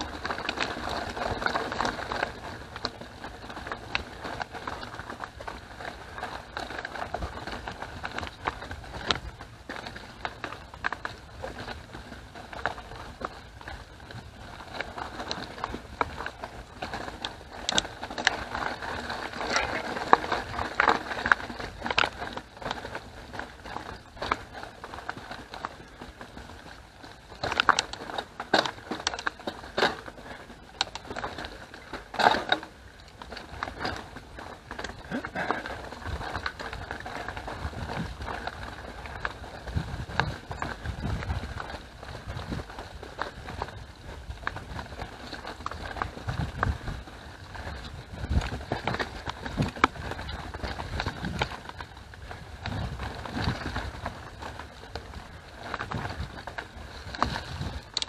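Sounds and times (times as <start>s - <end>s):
bike rattling over bumps: 0.0s - 58.0s
bike tyres on dirt trail: 0.0s - 58.0s.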